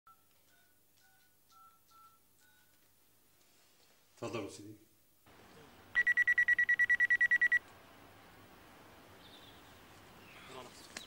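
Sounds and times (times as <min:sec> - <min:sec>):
phone keypad beeps: 0:06.0 - 0:07.6.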